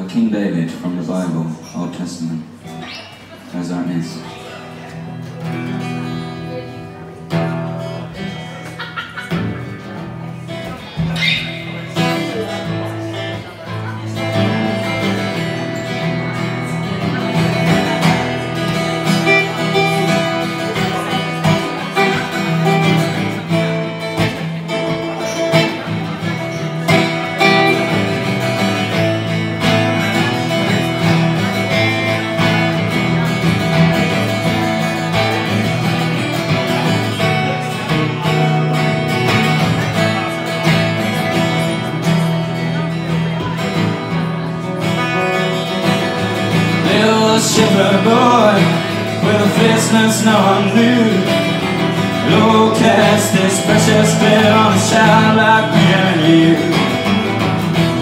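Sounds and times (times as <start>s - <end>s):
acoustic guitars strumming: 0.0s - 58.0s
man singing: 46.5s - 58.0s.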